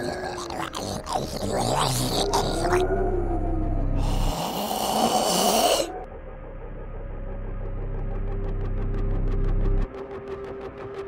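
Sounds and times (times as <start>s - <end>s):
low steady drone: 0.0s - 11.0s.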